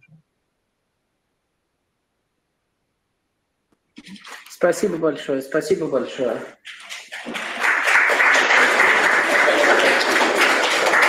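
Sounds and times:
audience applause: 6.7s - 11.0s.

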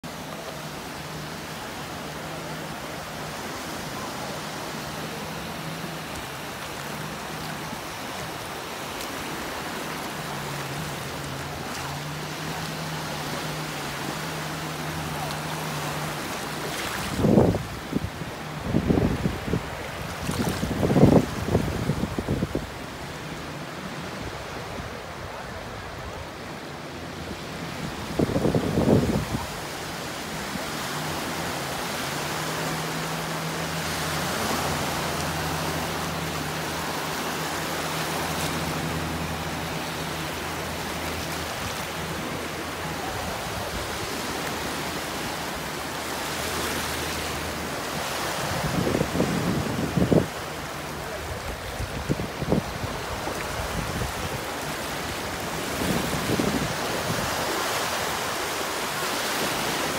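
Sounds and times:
small waves washing on shore: 0.0s - 59.9s
wind buffeting microphone: 17.1s - 23.0s, 27.7s - 29.7s, 48.5s - 50.6s.

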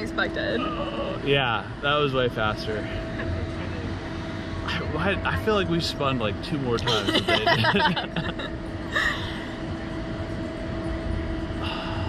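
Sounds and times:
faint machinery whine: 0.0s - 12.0s
low mechanical hum: 0.0s - 12.0s.

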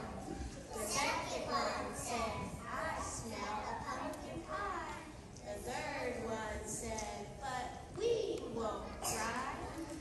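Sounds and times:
children chanting a song: 0.0s - 7.0s.

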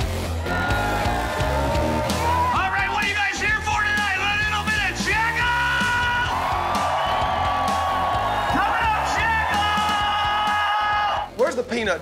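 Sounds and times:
bass and drum groove: 0.0s - 12.0s.

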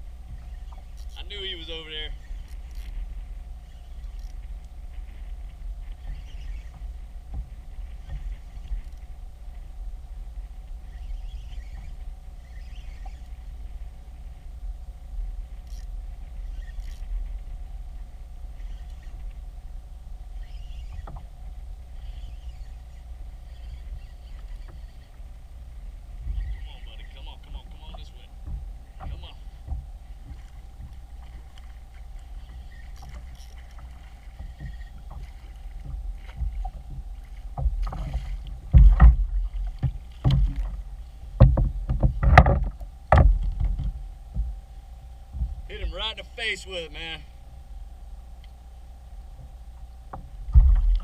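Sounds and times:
wind buffeting microphone: 25.6s - 44.6s.

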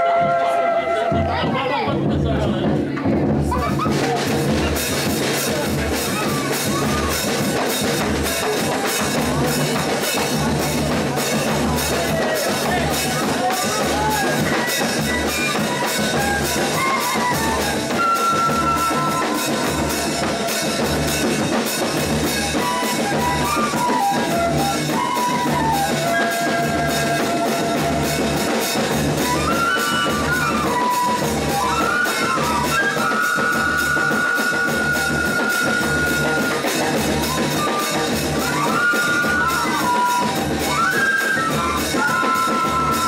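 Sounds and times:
bass drum and snare beat: 1.0s - 43.0s.

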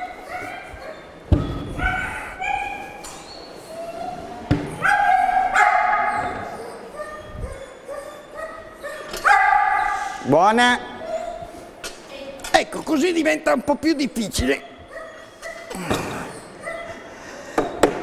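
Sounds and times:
dog barking and yelping: 0.0s - 10.2s, 14.6s - 15.7s, 16.5s - 17.0s.

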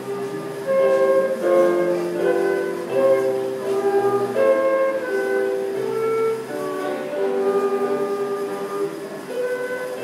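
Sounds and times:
flute playing sustained notes: 0.0s - 10.0s.

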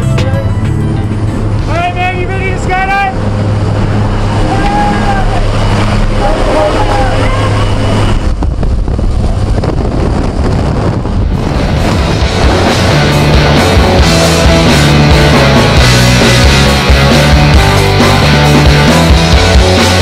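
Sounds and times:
propeller engine drone: 0.0s - 20.0s
rush of wind: 1.0s - 16.4s
voices shouting: 3.9s - 7.9s.

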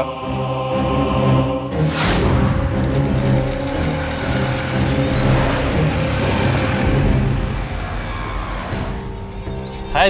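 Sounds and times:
background music score: 0.0s - 10.0s
street traffic: 2.7s - 9.7s.

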